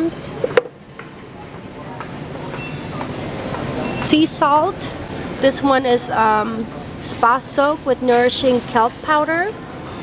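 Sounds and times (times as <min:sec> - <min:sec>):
low store background rumble: 0:00.0 - 0:10.0.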